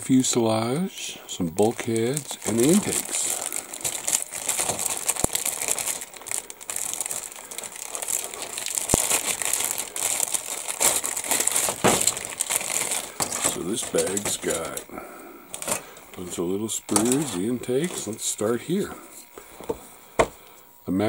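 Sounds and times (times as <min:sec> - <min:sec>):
plastic bag crinkling: 0:01.4 - 0:19.8.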